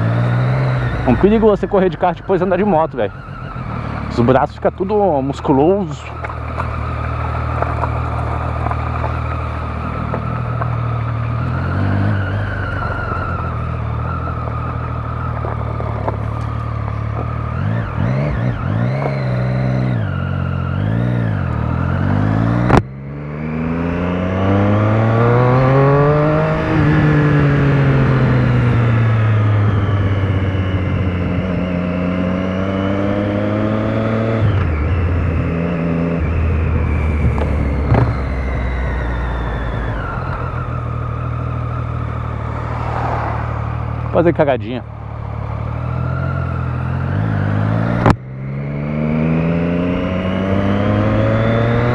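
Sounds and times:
motorcycle engine revving: 0.0 - 51.9.

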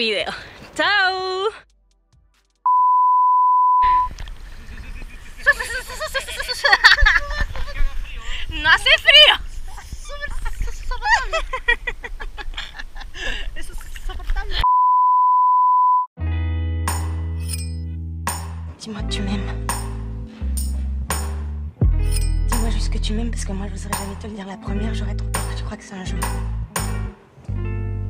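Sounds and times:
high bleep tone: 2.7 - 4.1, 14.7 - 16.1
steady electronic beep: 2.7 - 4.1
woman laughing: 4.7 - 14.7.

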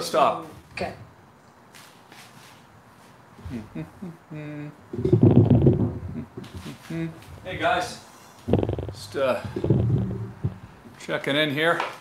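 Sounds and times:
man making low wordless sounds: 3.4 - 7.6, 8.5 - 10.2.

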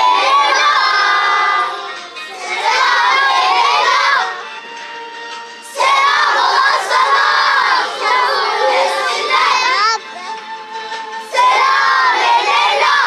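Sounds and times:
children singing loudly: 0.0 - 4.4, 5.7 - 10.2, 11.3 - 13.0.

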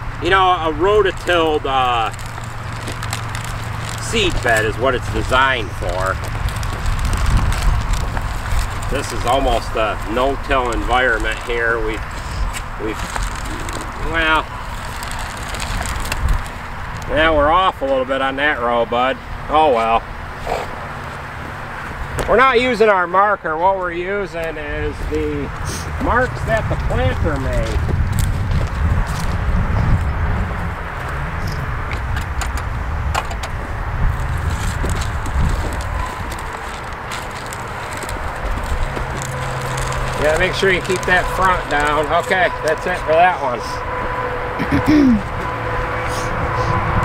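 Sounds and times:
wind buffeting microphone: 0.0 - 17.8, 24.1 - 47.0
wheels crunching over soil clods: 0.0 - 44.2
low steady rumble: 0.0 - 47.0.

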